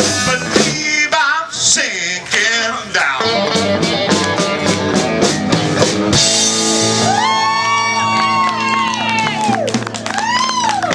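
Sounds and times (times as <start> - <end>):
audience whooping cheer: 6.9 - 10.9
people clapping: 7.2 - 10.9.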